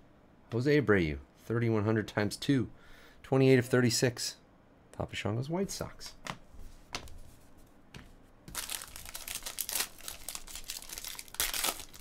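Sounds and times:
foil wrapper crinkling and tearing: 8.5s - 12.0s.

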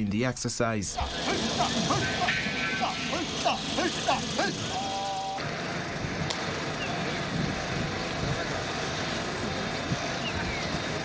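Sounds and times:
indistinct voices: 0.9s - 11.0s
steady rushing noise: 0.9s - 11.0s.

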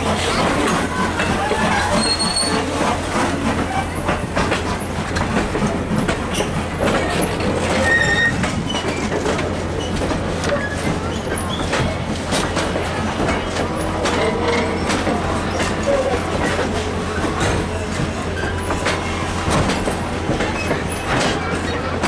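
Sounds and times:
train wheels rumbling on rails: 0.0s - 22.0s
wheels knocking over rail joints: 0.0s - 22.0s
high wheel squeals: 0.2s - 2.9s, 7.7s - 9.1s.

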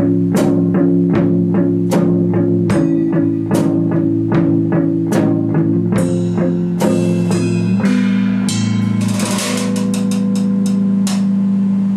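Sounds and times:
bass guitar notes: 0.0s - 11.9s
drums and cymbals: 0.0s - 11.9s.

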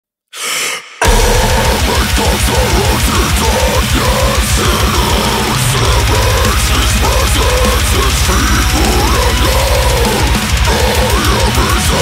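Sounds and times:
sharp gasp of breath: 0.3s - 1.0s
heavy metal band: 1.0s - 12.0s
rapid kick drums: 1.0s - 12.0s.

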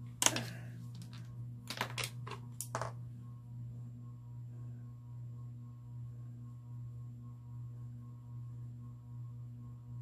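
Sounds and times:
makeup tools clicking and clattering: 0.2s - 3.0s.

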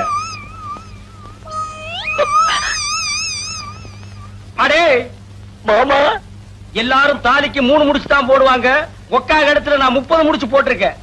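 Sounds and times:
comic warbling sliding note: 0.0s - 4.2s
loud voice cries: 0.0s - 4.6s.

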